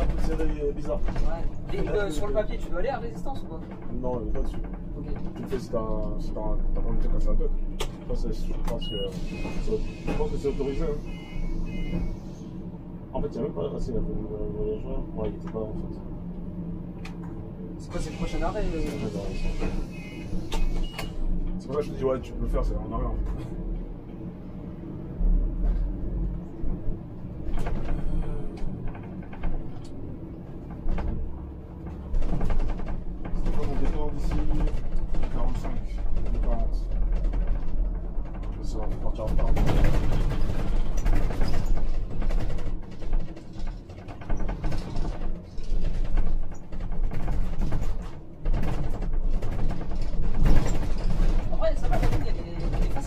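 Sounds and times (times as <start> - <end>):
bus engine and road rumble: 0.0 - 53.0
bodywork knocks and rattles: 26.7 - 53.0.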